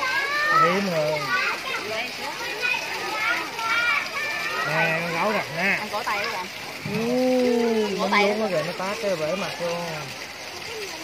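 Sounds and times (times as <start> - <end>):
children chattering: 0.0 - 11.0
voices talking over each other: 0.0 - 11.0.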